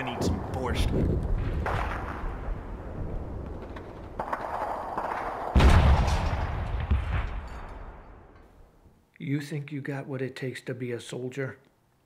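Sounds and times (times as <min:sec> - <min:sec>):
heavy boom: 0:05.6 - 0:07.5.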